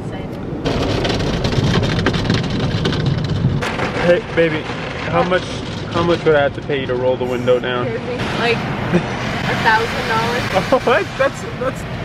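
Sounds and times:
car wash water spray and brushes: 0:04.5 - 0:12.0.

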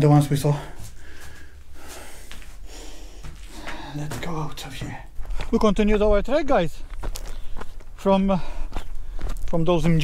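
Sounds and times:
man breathing: 0:00.6 - 0:04.2, 0:08.4 - 0:09.4.

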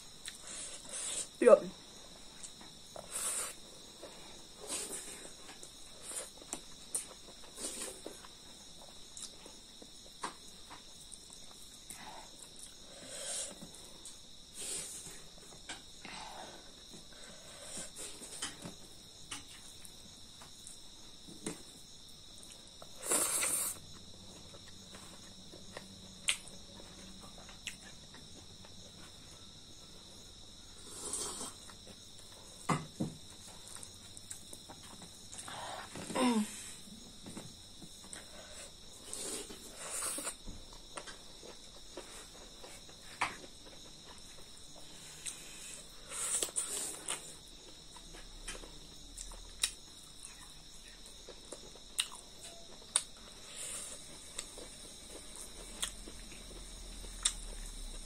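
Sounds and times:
crickets trilling: 0:00.0 - 0:58.0.

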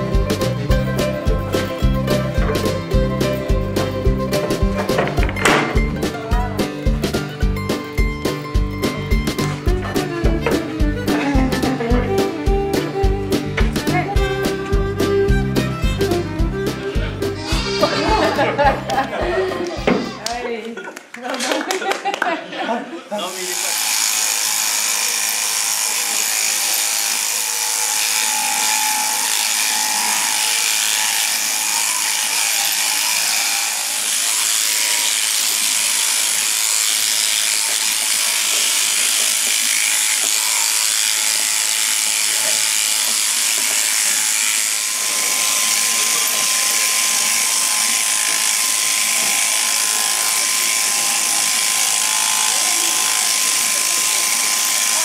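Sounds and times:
electric shearing handpiece running: 0:00.0 - 0:20.4, 0:23.2 - 0:55.0.

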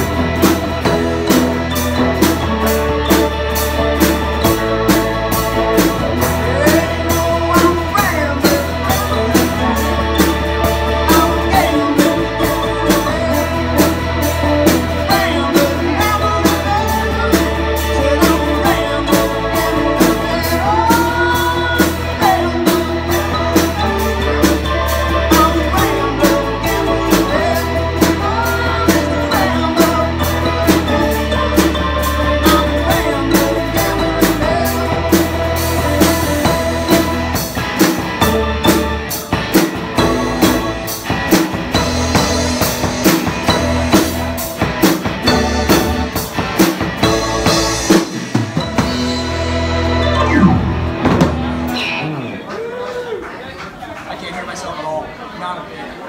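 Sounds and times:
live rock band playing: 0:00.0 - 0:54.1.

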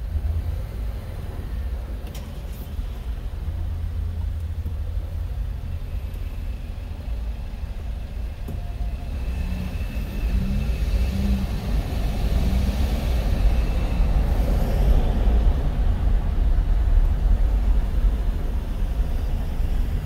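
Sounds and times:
car engine and tyres rumbling: 0:00.0 - 0:20.0.

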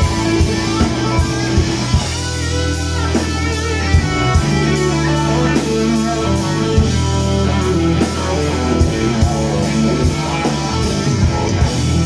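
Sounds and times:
bass guitar: 0:00.0 - 0:12.0
cymbals keeping a beat: 0:00.0 - 0:12.0
drum kit: 0:00.0 - 0:12.0
electric guitar: 0:00.0 - 0:12.0
hammond organ: 0:00.0 - 0:12.0.

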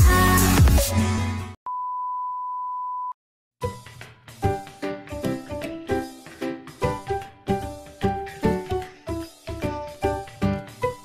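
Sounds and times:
steady test tone beep: 0:01.7 - 0:03.2.

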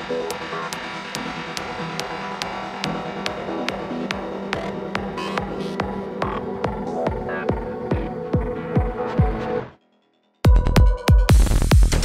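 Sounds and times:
kick drum beat: 0:01.2 - 0:09.5, 0:10.5 - 0:12.0.

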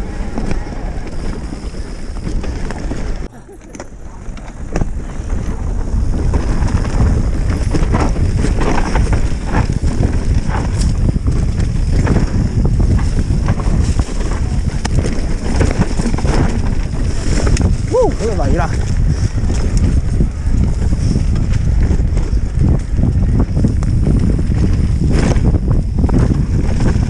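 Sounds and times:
bike tyres rumbling on dirt: 0:00.0 - 0:27.0
wind buffeting microphone: 0:00.0 - 0:27.0.

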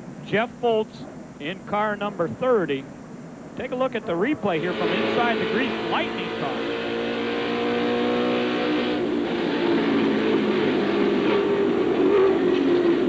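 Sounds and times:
race car engine at speed: 0:04.0 - 0:13.0.

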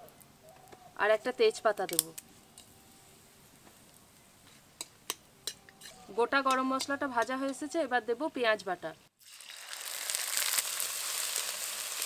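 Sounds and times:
onion paste sizzling in oil: 0:01.0 - 0:12.0
metal spatula stirring: 0:04.4 - 0:07.9.

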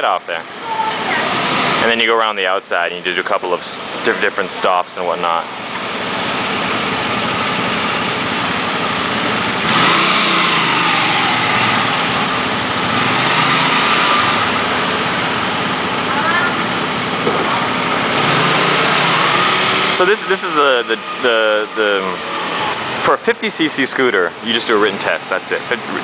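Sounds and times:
scooter engines idling: 0:00.0 - 0:26.0.

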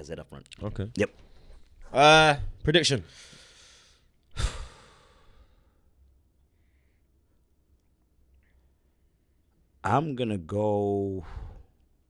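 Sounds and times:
man sighing: 0:04.3 - 0:05.4.

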